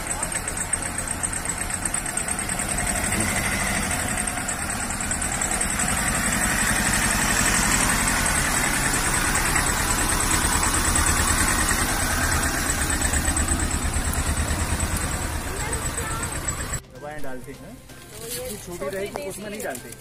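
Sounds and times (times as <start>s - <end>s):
truck engine idling: 0.0s - 20.0s.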